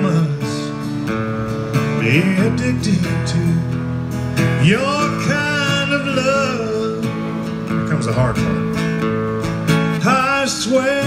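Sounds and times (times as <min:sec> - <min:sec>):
man singing: 0:00.0 - 0:01.0, 0:01.8 - 0:03.8, 0:04.4 - 0:07.4, 0:09.9 - 0:11.0
strummed acoustic guitar: 0:00.0 - 0:11.0.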